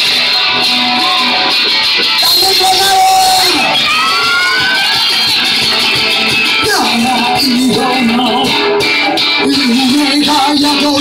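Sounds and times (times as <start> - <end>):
live acoustic guitar band: 0.0 - 11.0
people shouting and whooping: 0.2 - 7.0.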